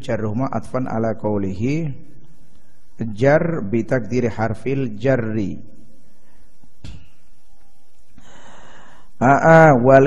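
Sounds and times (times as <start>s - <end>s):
steady low hiss: 0.0s - 10.0s
man drawing a breath: 8.2s - 9.2s.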